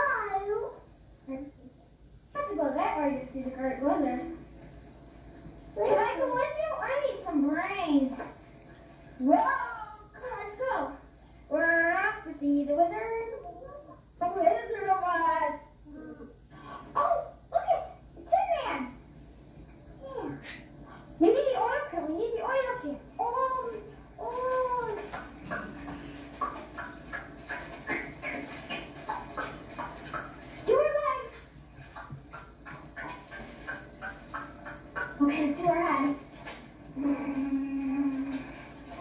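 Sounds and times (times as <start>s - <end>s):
child calling from television: 21.6s - 25.2s.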